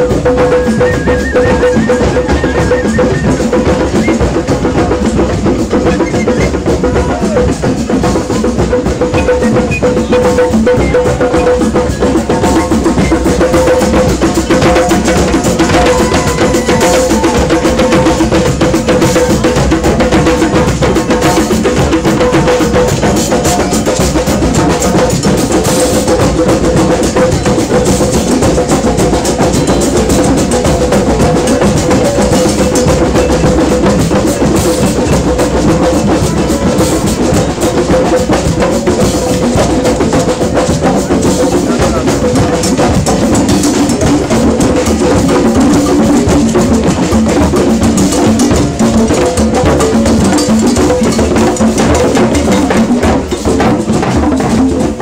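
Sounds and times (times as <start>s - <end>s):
drum circle playing: 0.0s - 55.0s
drum kit: 0.0s - 55.0s.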